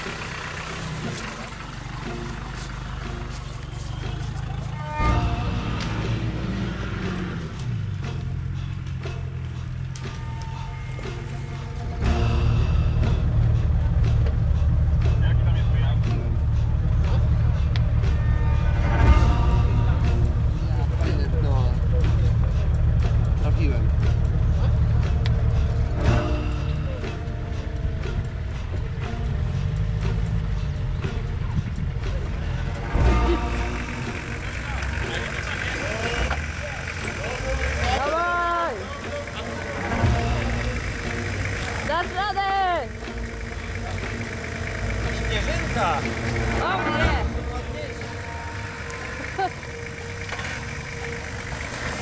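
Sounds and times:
background music: 0.0 - 52.0
off-road engines at low revs: 0.0 - 52.0
indistinct voices calling out: 3.6 - 7.6, 32.3 - 52.0.

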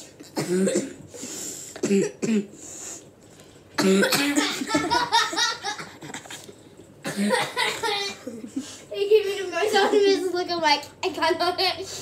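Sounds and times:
children laughing: 4.3 - 6.5, 7.1 - 10.5.

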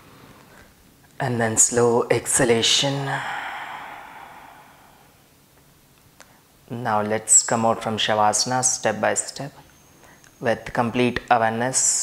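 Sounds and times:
person exhaling slowly: 2.9 - 5.3.

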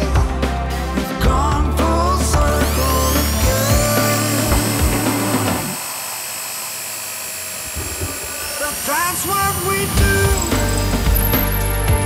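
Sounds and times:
background music: 0.0 - 5.8, 10.0 - 12.0
electric drill whining: 2.2 - 12.0.

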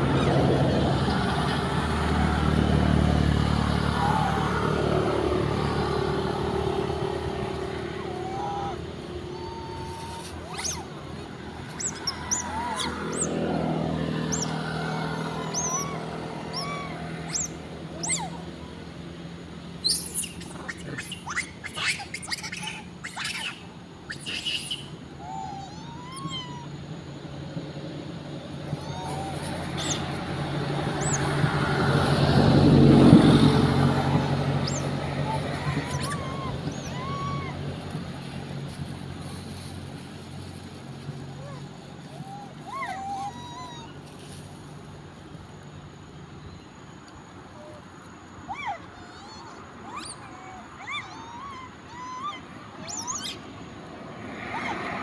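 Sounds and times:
motor vehicles passing: 0.0 - 55.0
short chirps and squeaks: 52.8 - 53.4.

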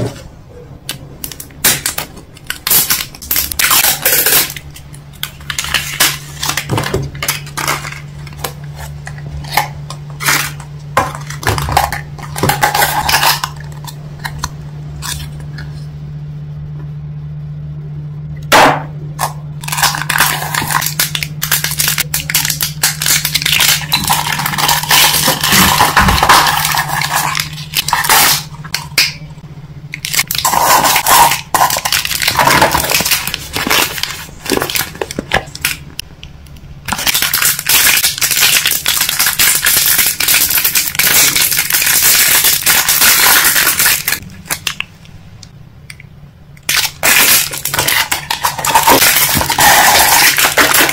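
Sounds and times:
steady low hum: 0.0 - 50.9
plastic wrapper crinkling: 19.6 - 28.9, 29.9 - 35.8, 36.9 - 44.9, 46.6 - 50.9.

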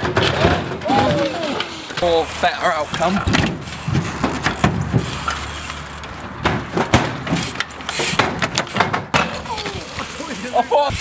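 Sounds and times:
knocks and clunks of boards: 0.0 - 1.2, 6.3 - 7.4, 8.0 - 9.4
bike wheels rolling on wooden planks: 0.0 - 11.0.

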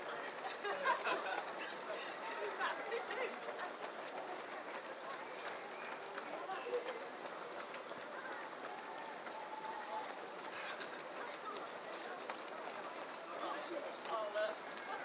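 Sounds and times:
footsteps of runners on wet road: 0.0 - 15.0
murmur of voices: 0.0 - 15.0.

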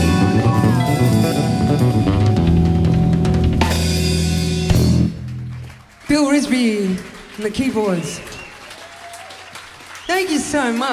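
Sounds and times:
audience applauding: 5.1 - 10.9.

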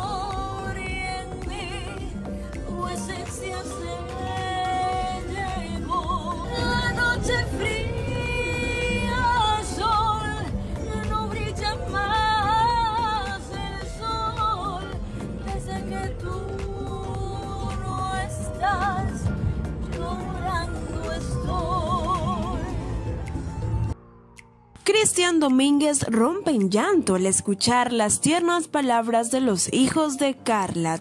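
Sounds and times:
woman singing a sad ballad: 0.0 - 23.2
backing music: 0.0 - 31.0.

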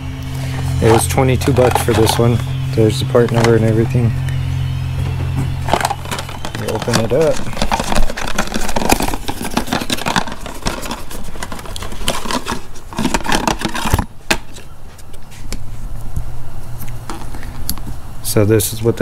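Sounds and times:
packaging crinkling and rustling: 5.0 - 15.2.

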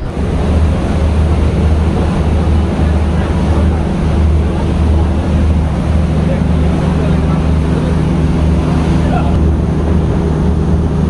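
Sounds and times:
boat engines humming: 0.0 - 11.0
storm wind and spray: 0.0 - 11.0.

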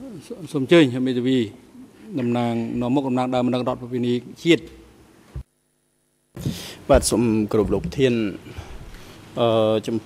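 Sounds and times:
man speaking through a microphone: 6.9 - 8.5.

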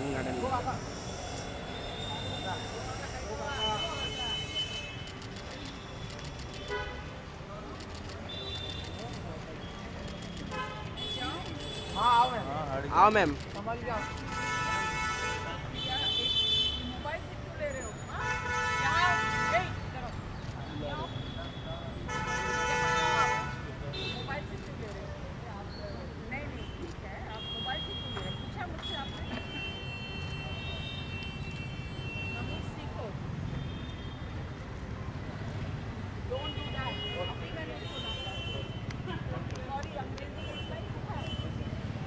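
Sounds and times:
street noise: 0.0 - 42.0.

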